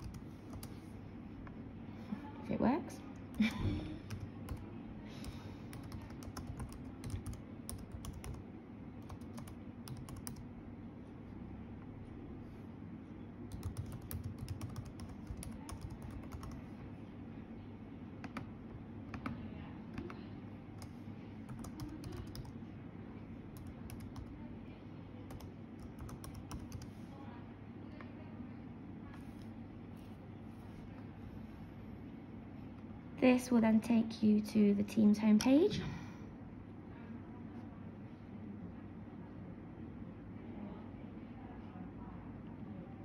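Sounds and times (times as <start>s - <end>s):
computer keyboard typing: 0.0s - 0.9s, 3.2s - 8.4s, 9.0s - 10.5s, 13.5s - 16.7s, 18.2s - 18.5s, 19.1s - 22.6s, 23.5s - 24.4s, 25.3s - 27.0s.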